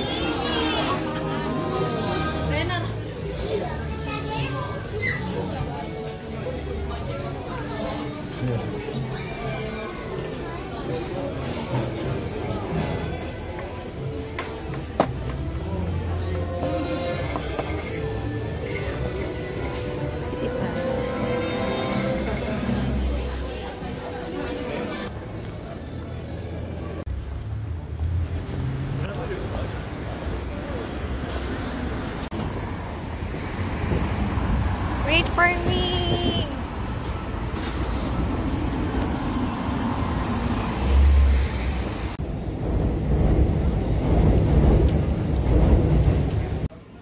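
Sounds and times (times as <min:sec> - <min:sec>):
passers-by talking: 0:00.0 - 0:42.2
city street traffic rumble: 0:00.0 - 0:47.0.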